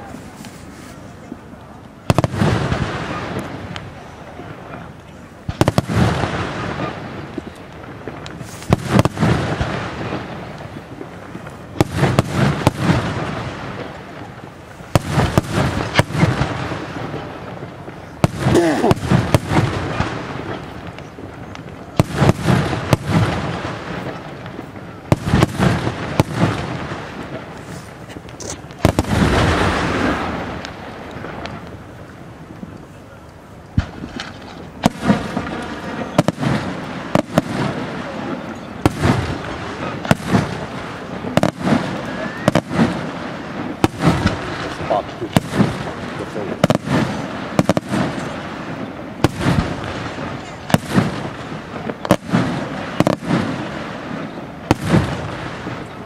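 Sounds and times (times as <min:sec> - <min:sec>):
fireworks bursting: 0:00.0 - 0:56.0
fireworks rumble and crackle: 0:00.0 - 0:56.0.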